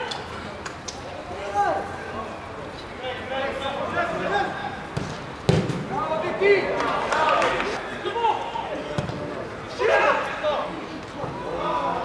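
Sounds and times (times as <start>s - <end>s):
football being kicked: 5.0s - 5.9s.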